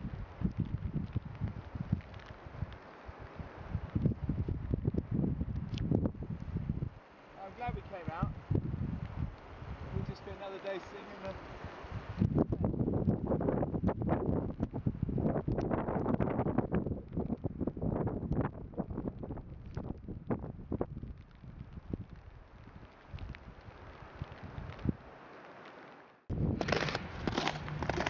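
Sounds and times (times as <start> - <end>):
wind buffeting microphone: 0.0 - 25.1, 26.3 - 28.0.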